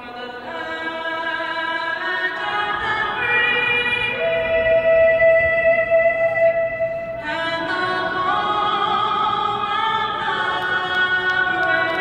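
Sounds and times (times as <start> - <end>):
woman singing into a microphone: 0.0 - 12.0.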